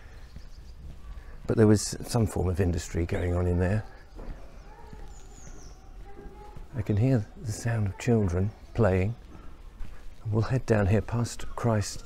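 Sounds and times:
children playing: 0.0s - 12.0s
light footsteps: 0.0s - 12.0s.

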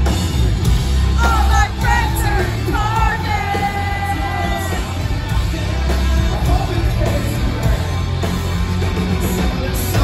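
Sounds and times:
drums: 0.0s - 10.0s
electric guitars: 0.0s - 10.0s.

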